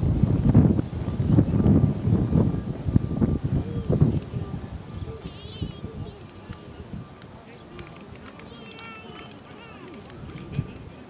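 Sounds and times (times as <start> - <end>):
outdoor chatter of voices: 0.4 - 11.0.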